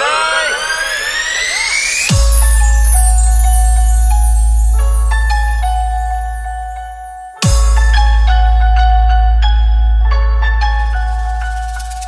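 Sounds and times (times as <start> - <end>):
synth tone sweeping upward: 0.0 - 7.2.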